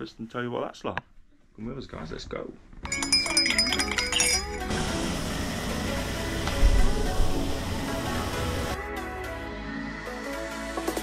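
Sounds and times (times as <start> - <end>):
background music: 2.8 - 11.0
spoon clinking against mug: 2.9 - 4.8
shower water hissing: 4.6 - 8.8.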